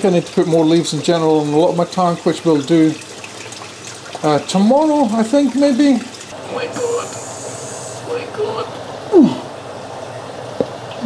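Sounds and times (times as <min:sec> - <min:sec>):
water pouring into aquarium: 0:00.0 - 0:11.0
short falling vocal sound: 0:09.1 - 0:09.5.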